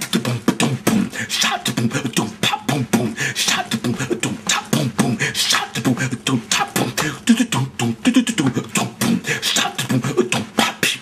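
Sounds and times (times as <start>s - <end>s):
man beatboxing: 0.0s - 11.0s.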